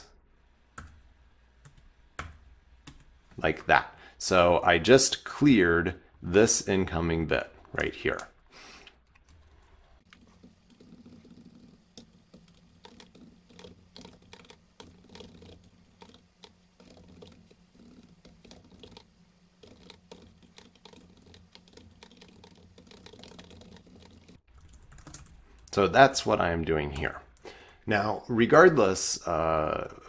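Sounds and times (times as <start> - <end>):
computer keyboard typing: 9.1 - 25.7.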